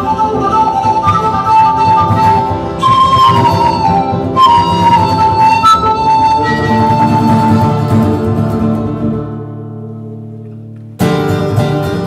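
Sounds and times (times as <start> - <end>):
flute folk melody: 0.0 - 12.0
strummed acoustic guitar: 0.0 - 12.0.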